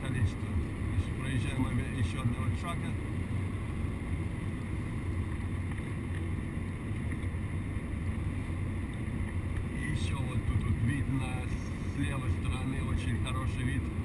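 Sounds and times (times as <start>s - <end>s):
car engine and tyre rumble: 0.0s - 14.0s.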